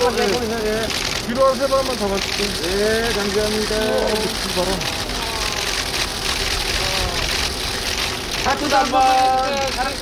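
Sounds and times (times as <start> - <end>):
faint voices: 0.0 - 7.7
vehicle engine running: 0.0 - 10.0.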